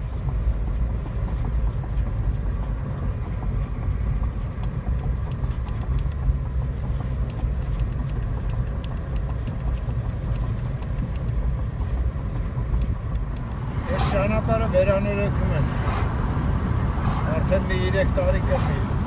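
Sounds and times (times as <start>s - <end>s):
car engine and tyre rumble: 0.0s - 19.0s.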